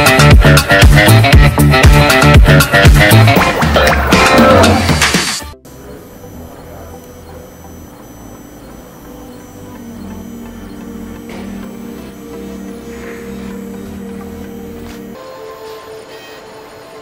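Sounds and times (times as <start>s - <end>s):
plucked guitar music: 5.7s - 17.0s.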